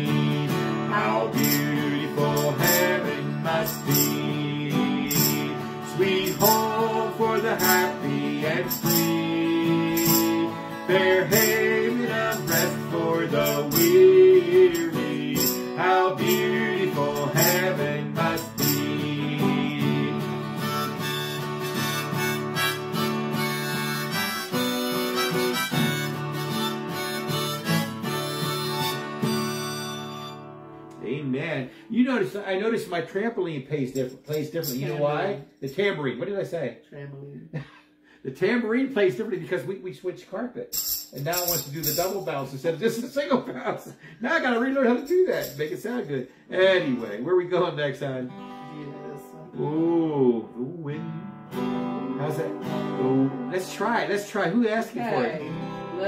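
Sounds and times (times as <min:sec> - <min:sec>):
harmonica melody: 0:00.0 - 0:31.0, 0:46.8 - 0:56.0
strummed acoustic guitar: 0:00.0 - 0:32.2, 0:41.2 - 0:56.0
tambourine jingles: 0:01.3 - 0:30.0, 0:33.9 - 0:35.6, 0:40.7 - 0:43.1, 0:44.8 - 0:46.1.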